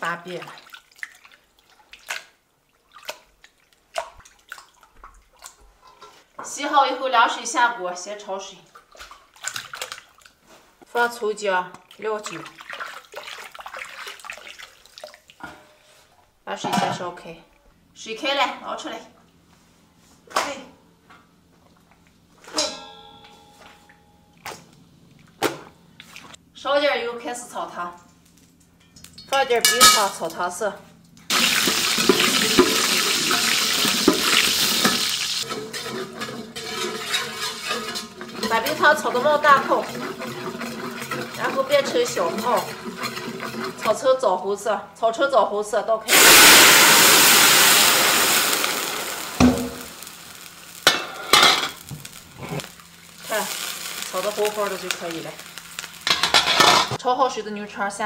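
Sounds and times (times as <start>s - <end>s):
metal cookware struck ringing: 22.5s - 24.4s, 29.6s - 30.3s
water sizzling in hot caramel: 31.3s - 44.0s, 46.1s - 56.4s.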